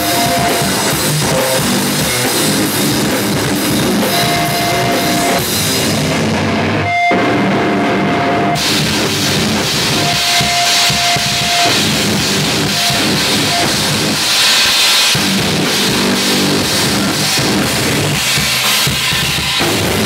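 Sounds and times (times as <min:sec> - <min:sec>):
cymbals crashing: 0:00.0 - 0:06.4, 0:08.6 - 0:20.0
distorted electric guitar: 0:00.0 - 0:20.0
drum kit: 0:00.0 - 0:20.0.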